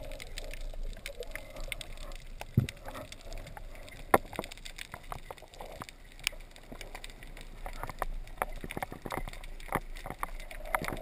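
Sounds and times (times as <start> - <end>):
underwater clicks and crackles: 0.0 - 11.0.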